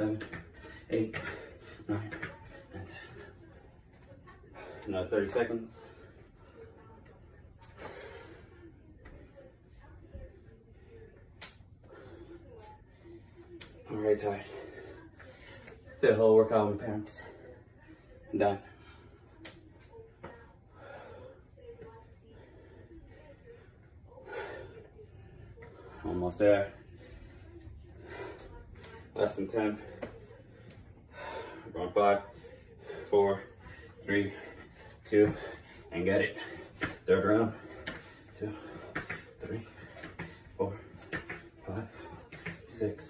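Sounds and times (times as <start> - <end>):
man breathing heavily: 0.0 - 3.6, 22.3 - 43.0.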